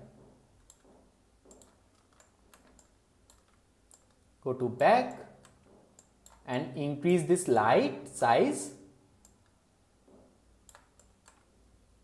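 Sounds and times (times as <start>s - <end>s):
computer mouse clicks: 0.6s - 4.2s, 5.1s - 6.5s, 9.2s - 9.6s, 10.6s - 11.6s.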